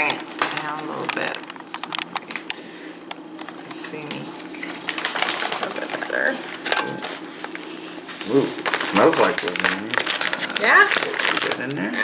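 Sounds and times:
food pouch crinkling: 4.5 - 12.0.

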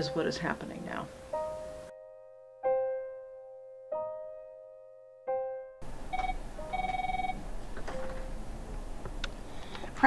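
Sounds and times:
piano note: 0.7 - 9.0
room noise: 5.8 - 10.0
desk phone electronic ring: 6.1 - 8.3.

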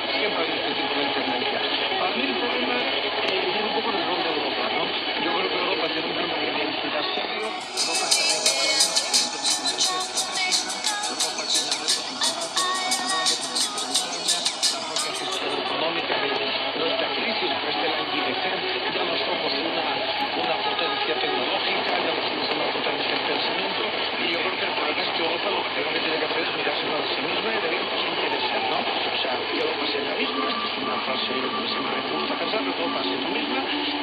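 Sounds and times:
faint speech on radio: 0.0 - 34.0
music from internet stream: 7.1 - 24.7
radio static hiss: 7.3 - 15.7.

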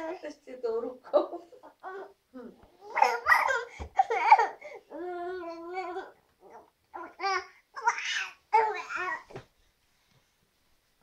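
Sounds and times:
baby vocalizing: 2.7 - 9.3.

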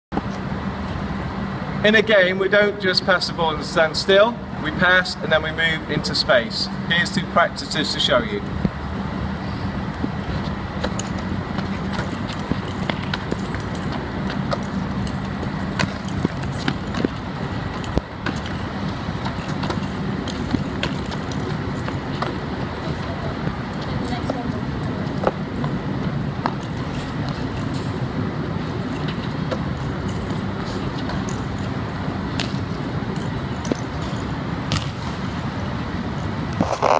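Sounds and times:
low hum: 5.3 - 36.9
feet on hard court: 10.4 - 24.4, 33.6 - 35.3
ball slaps and knocks: 32.3 - 32.7, 34.7 - 35.2.

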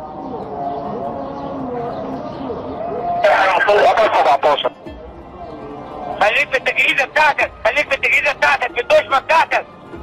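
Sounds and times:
background music: 0.0 - 10.0
man's voice over radio: 3.2 - 4.8, 6.2 - 9.7.

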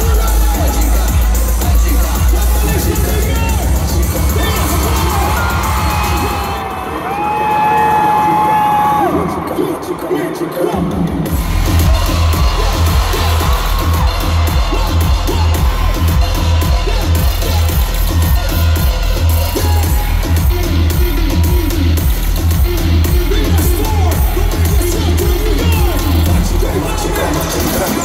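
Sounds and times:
faint crowd: 0.0 - 28.0
loud concert music with bass beat: 0.0 - 28.0.

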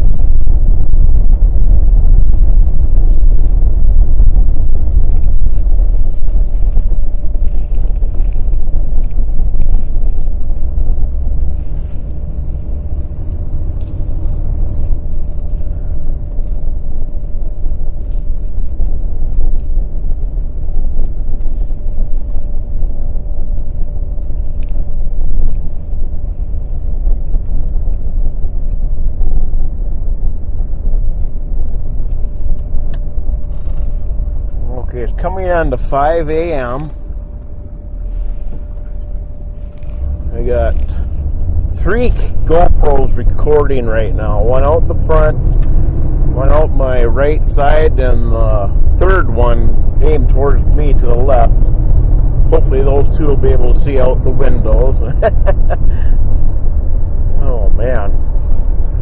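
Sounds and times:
car interior engine and road noise: 0.0 - 59.0.

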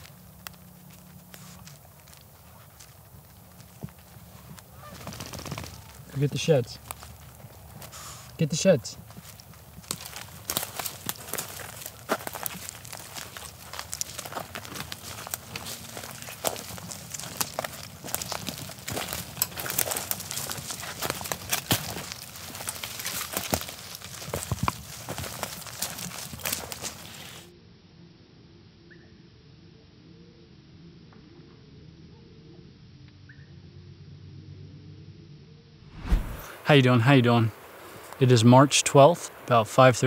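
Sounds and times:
footsteps crunching dry leaves: 0.0 - 27.5, 36.0 - 36.6.

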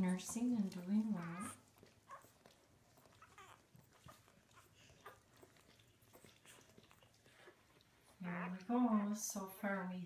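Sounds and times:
puppies squeaking: 0.3 - 8.2.

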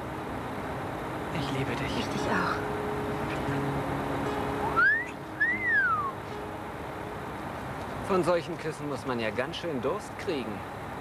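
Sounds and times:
soft background music: 0.0 - 10.0
wolf whistle: 4.8 - 6.2.

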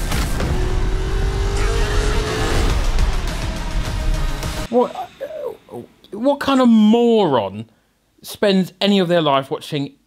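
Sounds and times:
car engine revving: 0.0 - 4.7
film trailer music: 0.0 - 6.0.

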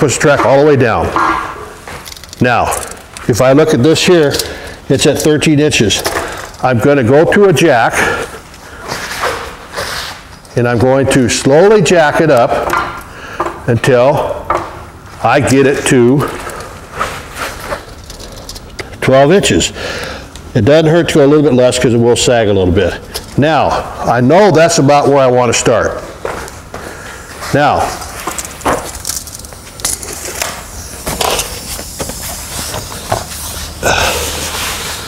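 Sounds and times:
hand tools knocking and scraping: 0.0 - 2.9, 10.8 - 19.0
hydraulic floor jack pumping: 26.2 - 35.0.

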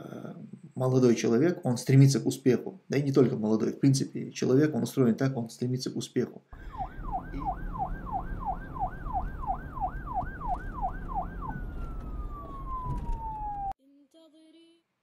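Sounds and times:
siren yelping and wailing: 6.6 - 13.8.

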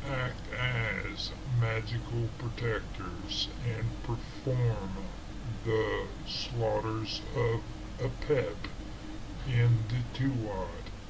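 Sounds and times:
person narrating slowly: 0.0 - 8.8, 9.4 - 11.0.

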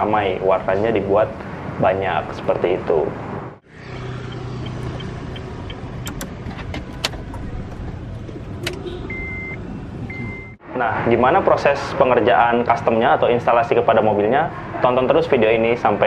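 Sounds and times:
sharp clicks: 4.3 - 7.4
car cabin hum: 4.3 - 10.5.

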